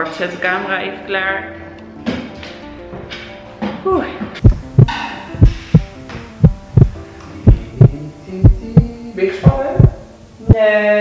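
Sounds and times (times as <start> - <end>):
soft background music: 0.0 - 11.0
heartbeat thumps: 4.4 - 10.0
steady hum: 4.4 - 10.6.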